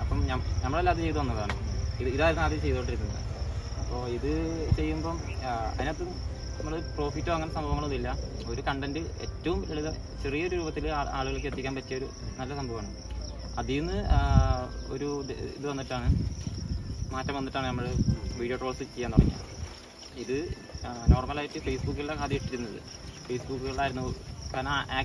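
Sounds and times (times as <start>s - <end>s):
crickets chirring: 0.0s - 25.0s
people talking: 3.9s - 16.2s, 17.1s - 19.4s, 20.2s - 25.0s.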